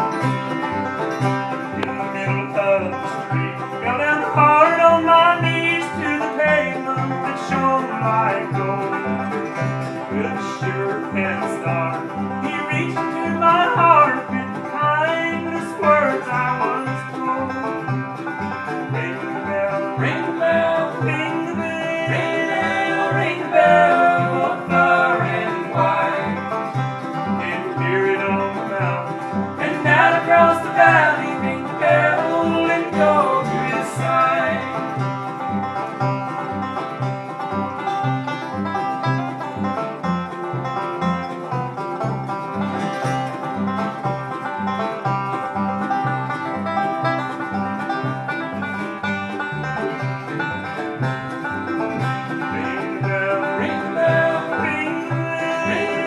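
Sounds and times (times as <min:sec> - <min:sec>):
acoustic guitar: 0:00.0 - 0:56.0
banjo picking: 0:00.0 - 0:56.0
upright bass: 0:00.0 - 0:56.0.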